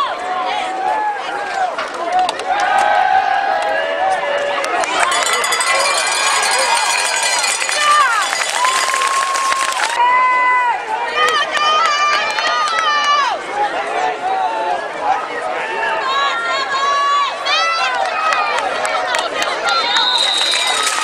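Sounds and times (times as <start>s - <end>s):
crowd yelling and cheering: 0.0s - 21.0s.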